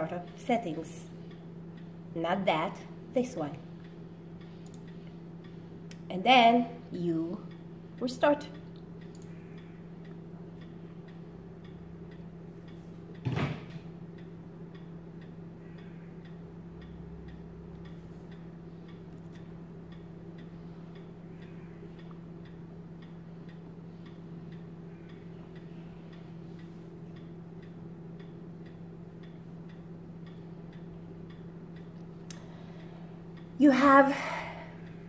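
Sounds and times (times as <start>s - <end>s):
faint even ticking: 0.0s - 6.1s, 6.8s - 13.2s, 13.9s - 35.0s
steady low hum: 0.0s - 35.0s.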